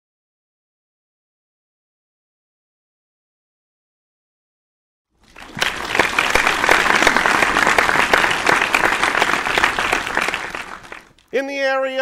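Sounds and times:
audience applause: 5.2 - 11.2.

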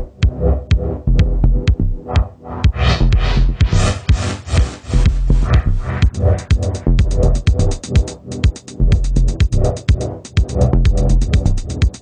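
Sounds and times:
drum machine beat: 0.0 - 12.0.

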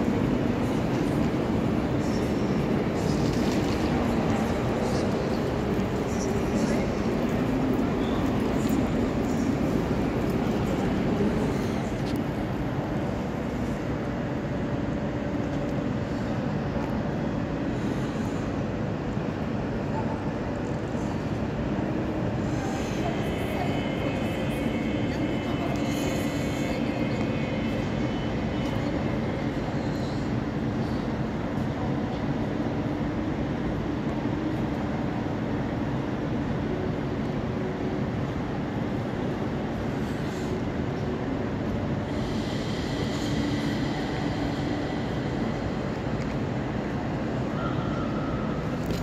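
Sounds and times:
trains rumbling in echoing station: 0.0 - 49.0.

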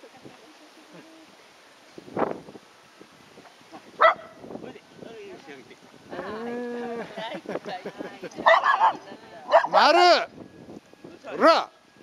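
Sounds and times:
dog barking: 4.0 - 4.4, 8.4 - 9.8.

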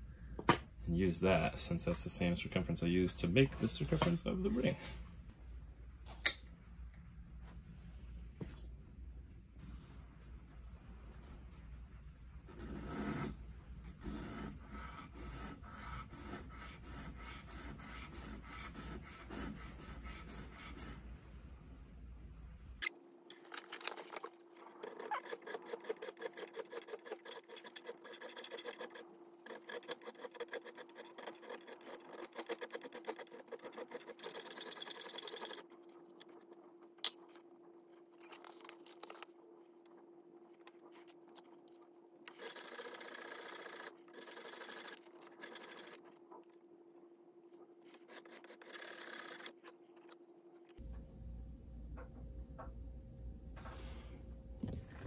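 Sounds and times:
steady low hum: 0.0 - 55.0
sandpaper rasping on metal: 24.8 - 35.6.

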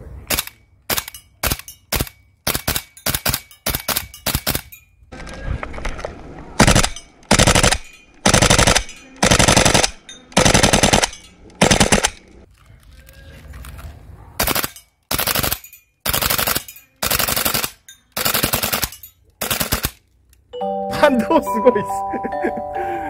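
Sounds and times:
full-auto bursts: 6.6 - 12.4, 14.4 - 20.0.

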